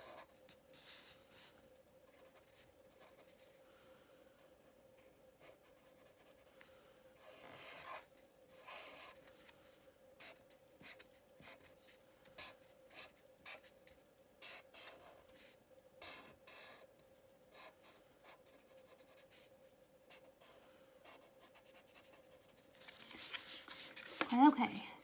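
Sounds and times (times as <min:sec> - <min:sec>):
marker scratching on paper: 0:00.0 - 0:03.6, 0:05.0 - 0:06.6, 0:07.2 - 0:09.6, 0:10.2 - 0:24.5
faint steady hum: 0:00.0 - 0:25.0.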